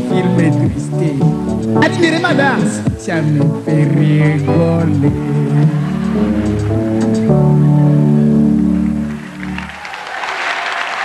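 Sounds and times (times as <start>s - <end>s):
audience applause: 5.2s - 11.0s.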